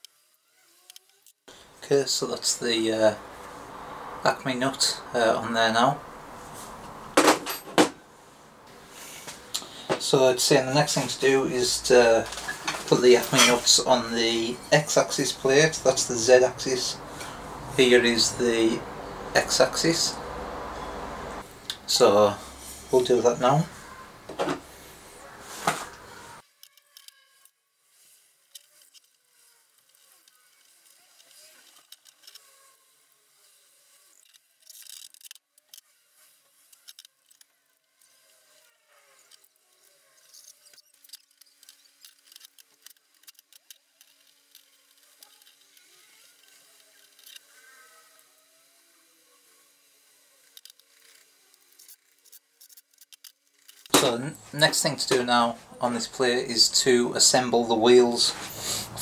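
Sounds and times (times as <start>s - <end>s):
small metal parts clicking: 26.5s - 27.5s, 28.4s - 32.6s, 34.1s - 35.9s, 36.6s - 38.3s, 39.2s - 47.5s, 50.4s - 53.9s.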